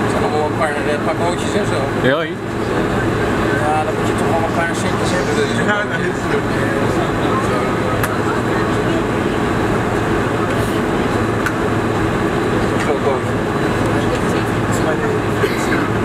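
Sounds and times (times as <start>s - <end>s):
airliner cabin engine hum: 0.0s - 16.0s
passengers talking: 0.0s - 16.0s.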